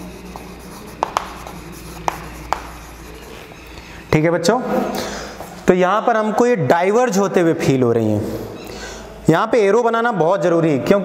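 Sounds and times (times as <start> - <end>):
chalk tapping on board: 0.0 - 3.4
chalk scratching on chalkboard: 0.0 - 3.6.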